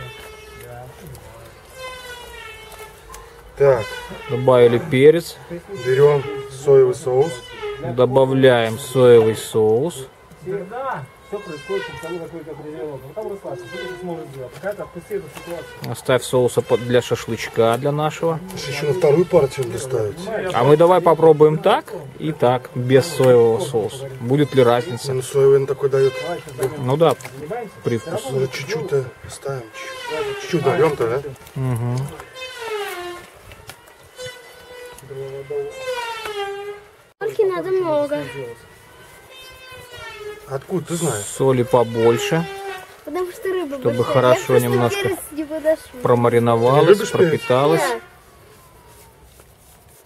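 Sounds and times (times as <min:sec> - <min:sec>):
indistinct voices talking: 0:00.0 - 0:48.6.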